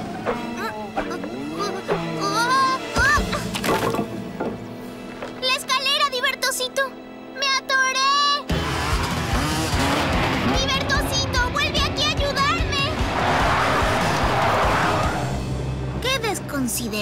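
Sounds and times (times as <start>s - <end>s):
music: 0.0s - 17.0s
cartoon vehicle speeding and skidding: 8.0s - 15.5s.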